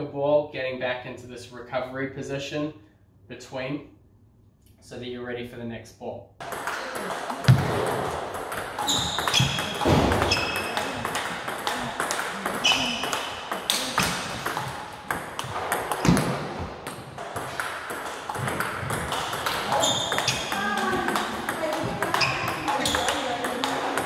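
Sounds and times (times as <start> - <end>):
ball bouncing on table: 6.4 - 24.0
ping pong ball hitting paddles: 6.4 - 24.0
shoes squeaking: 6.6 - 16.2, 18.4 - 24.0.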